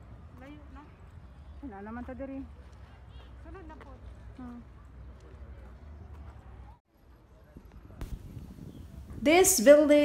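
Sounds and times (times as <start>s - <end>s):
footsteps on pavement: 0.3s - 6.8s
wind rumble on microphone: 7.4s - 9.8s.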